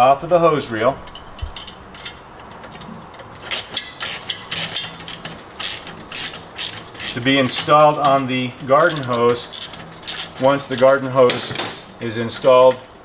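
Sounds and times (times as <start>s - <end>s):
hose reel clicks and rattles: 1.0s - 13.0s.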